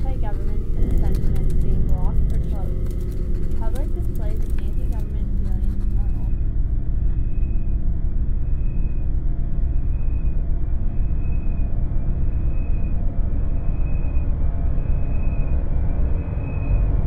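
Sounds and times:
low rumbling drone: 0.0s - 17.0s.

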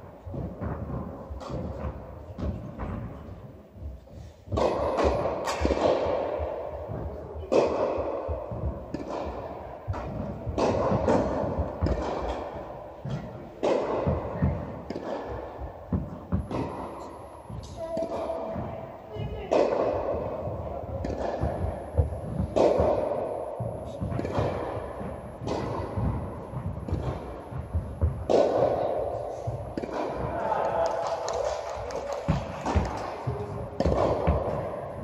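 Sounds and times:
rackets striking tennis ball: 0.0s - 35.0s.

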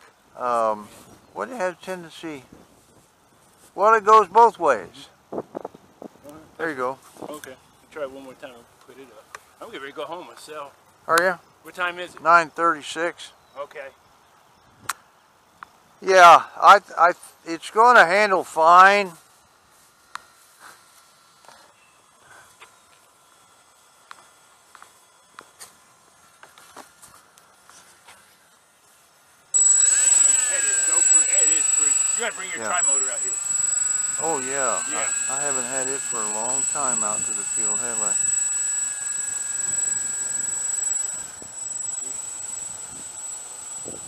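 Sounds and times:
electric motors high whine: 29.6s - 44.0s.

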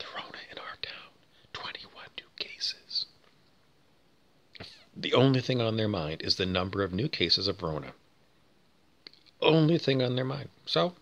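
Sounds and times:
man whispering: 0.0s - 3.2s.

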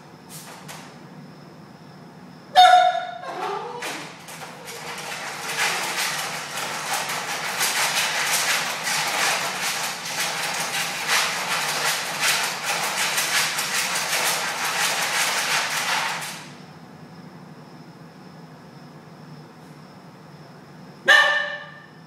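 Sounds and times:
metal wire crate rattling: 3.4s - 16.4s.

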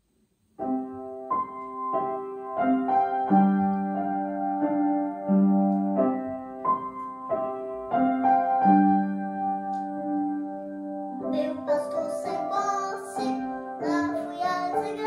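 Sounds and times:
upright piano melody: 0.6s - 15.0s.

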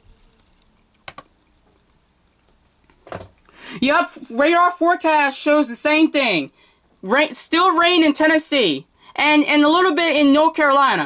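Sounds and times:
computer mouse clicks: 0.9s - 1.3s.

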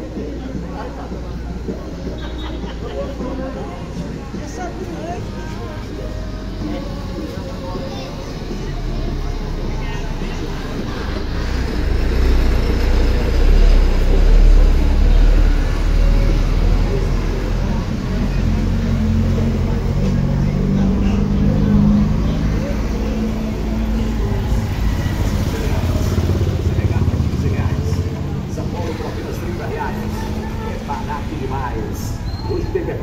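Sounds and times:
cars driving past: 0.0s - 33.0s
truck diesel engine rumbling: 0.0s - 33.0s
motorcycles driving past: 5.2s - 33.0s.

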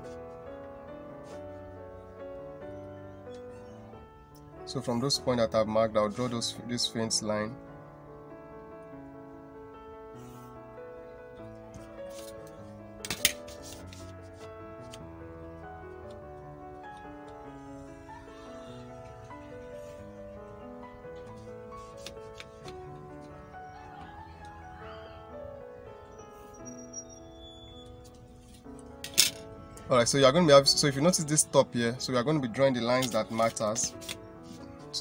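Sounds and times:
background music with held notes: 0.0s - 35.0s.

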